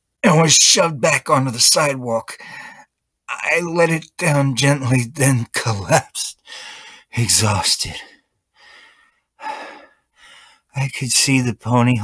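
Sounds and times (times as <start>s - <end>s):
person breathing heavily: 2.4s - 2.9s, 6.4s - 7.1s, 8.6s - 10.7s.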